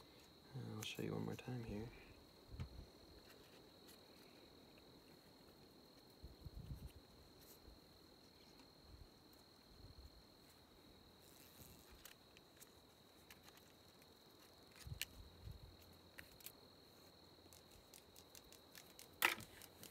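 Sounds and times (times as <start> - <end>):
high-pitched insect trill: 0.0 - 19.9
plastic tape and wire rustling: 11.3 - 19.9.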